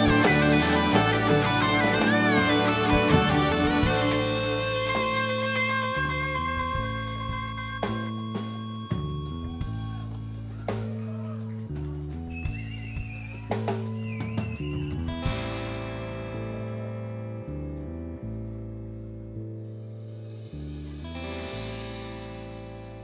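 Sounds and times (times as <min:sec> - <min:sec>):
electric guitar bent notes: 0:00.0 - 0:10.2
electric bass low notes: 0:00.0 - 0:23.0.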